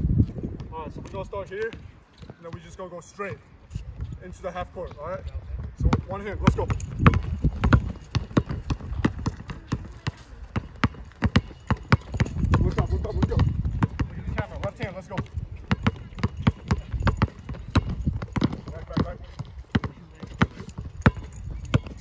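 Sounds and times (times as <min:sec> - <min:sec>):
basketballs bouncing on pavers: 0:05.6 - 0:22.0.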